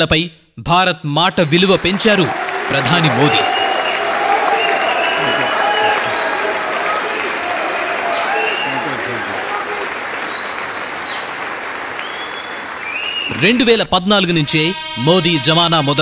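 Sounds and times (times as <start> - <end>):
audience applause: 1.4 - 13.8.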